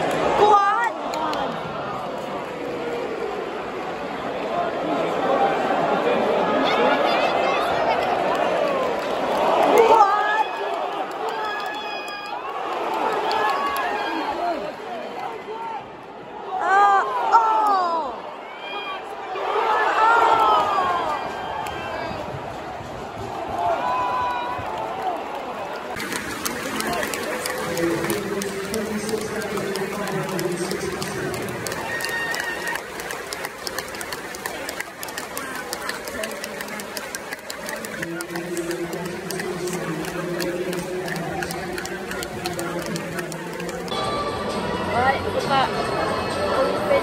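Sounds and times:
hand-clapping: 26.0 - 44.0.

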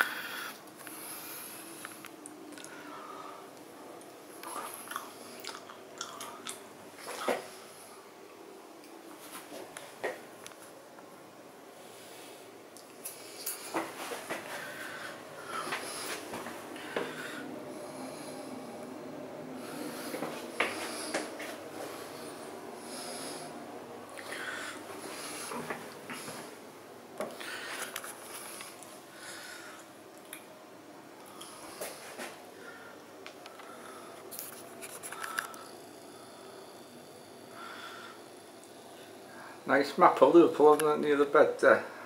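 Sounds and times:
faint high hum: 0.0 - 42.0
steady background noise: 0.0 - 42.0.

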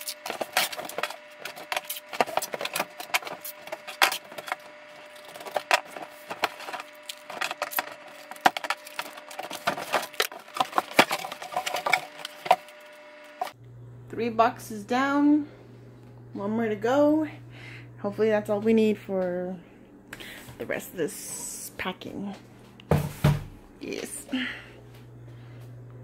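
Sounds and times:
packing tape pulled off roll: 0.0 - 12.7.

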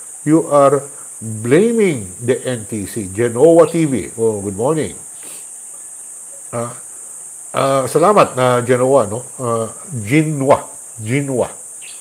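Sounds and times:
high-pitched hiss: 0.0 - 12.0
man saying uh: 0.3 - 5.0, 6.5 - 6.8, 7.6 - 11.6.

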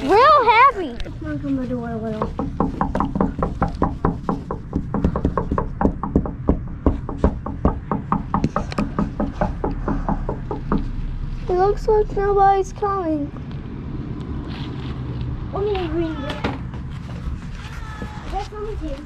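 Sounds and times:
low rumble of movement: 0.0 - 19.0
footsteps on pavement: 13.4 - 19.0.

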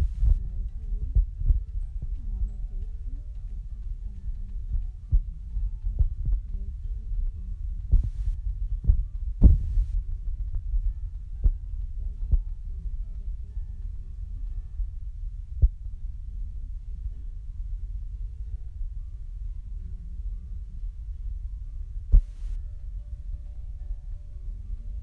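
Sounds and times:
low rumble: 0.0 - 25.0.

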